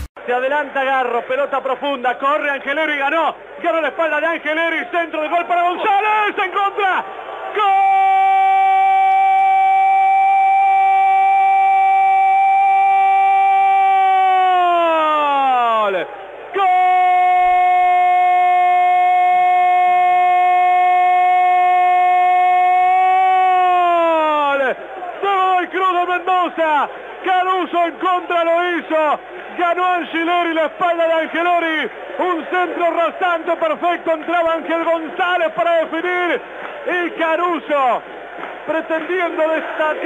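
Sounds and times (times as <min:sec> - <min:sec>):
fast commentary: 0:00.2 - 0:08.2, 0:24.3 - 0:38.0.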